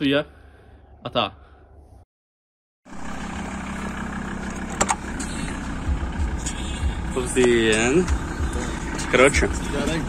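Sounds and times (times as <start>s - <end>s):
van engine running: 2.9s - 10.0s.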